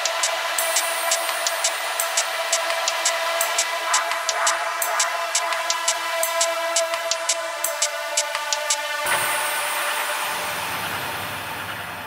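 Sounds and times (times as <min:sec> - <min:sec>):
dense noisy wash: 0:09.1 - 0:12.0.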